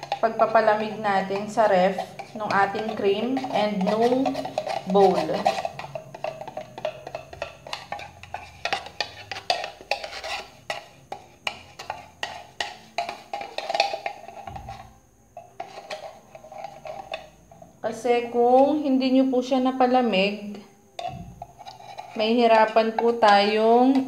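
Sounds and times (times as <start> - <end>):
whisk clicking against metal bowl: 0.0 - 14.8.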